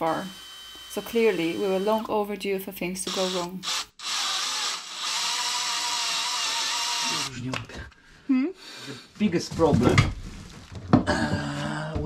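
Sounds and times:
hand drill drilling into bolt: 0:00.3 - 0:02.1, 0:03.1 - 0:07.4.

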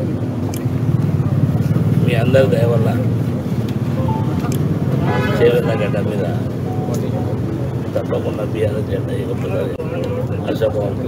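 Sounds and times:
man speaking: 0:05.3 - 0:11.0.

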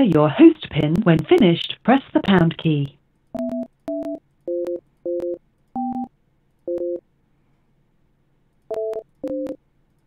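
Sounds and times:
phone keypad tones: 0:03.4 - 0:07.0, 0:08.7 - 0:09.6.

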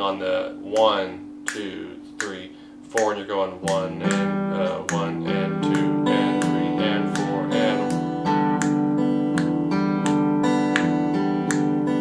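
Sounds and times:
fingerpicked acoustic guitar: 0:03.6 - 0:12.0.

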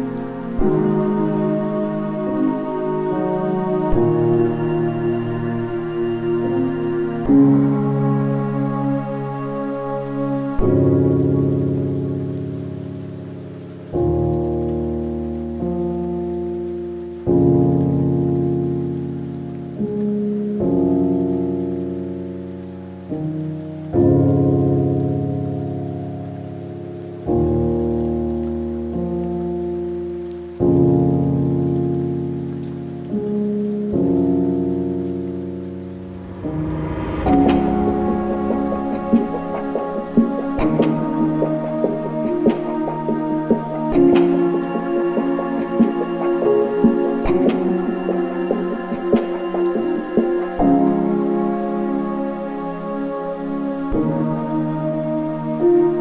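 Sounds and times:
rain pattering: 0:00.0 - 0:56.0
slow lofi piano chords: 0:00.0 - 0:56.0.

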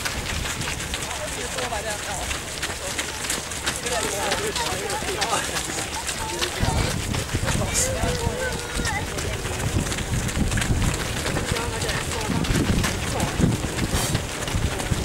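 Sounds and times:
wind rumble on microphone: 0:00.0 - 0:01.8, 0:06.1 - 0:15.0
indistinct voices: 0:00.0 - 0:15.0
runners' footsteps on dirt path: 0:00.0 - 0:15.0.

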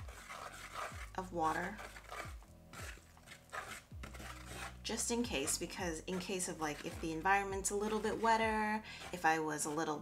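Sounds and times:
chopstick scraping wooden bowl: 0:00.0 - 0:10.0
faint background music: 0:00.0 - 0:10.0.

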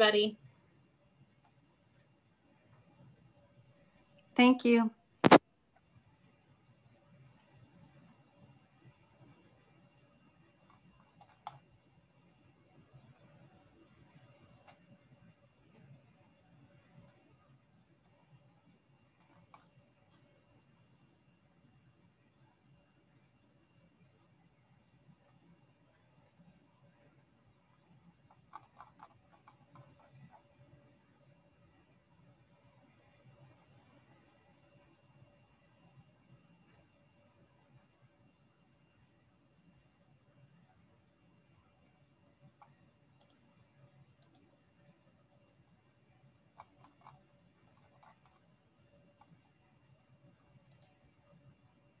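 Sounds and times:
faint clicks: 0:41.8 - 0:43.5, 0:44.2 - 0:44.5, 0:50.6 - 0:51.0.

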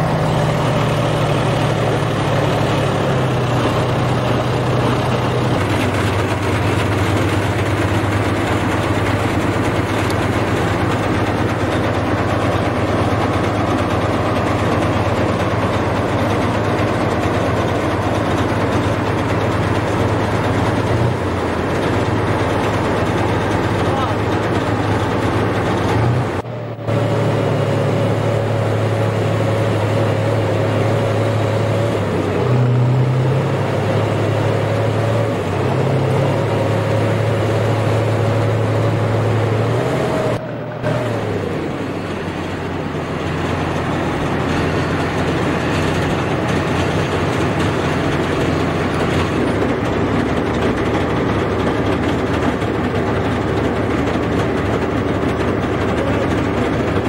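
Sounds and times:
diesel engine running: 0:00.0 - 0:57.0
steady whine: 0:00.0 - 0:57.0.

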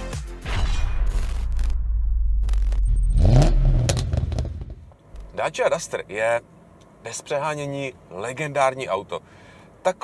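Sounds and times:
car engine revving: 0:02.4 - 0:04.9.

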